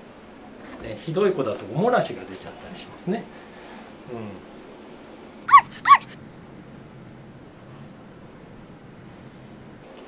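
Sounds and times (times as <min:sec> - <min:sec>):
dog yips: 0:05.5 - 0:06.2.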